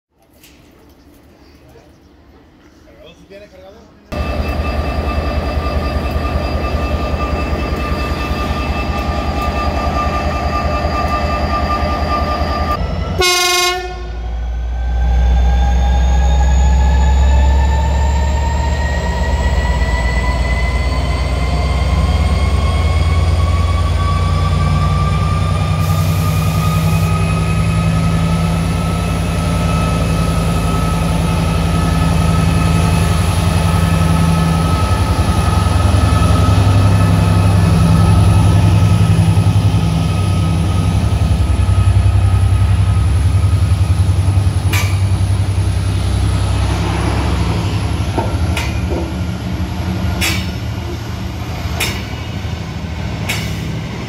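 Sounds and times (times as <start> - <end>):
locomotive engine rumble and whine: 3.8 - 54.0.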